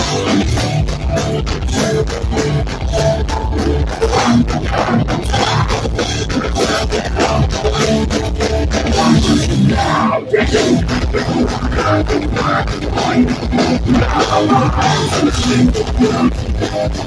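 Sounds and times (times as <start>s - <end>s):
punk band playing loud: 0.0s - 17.0s.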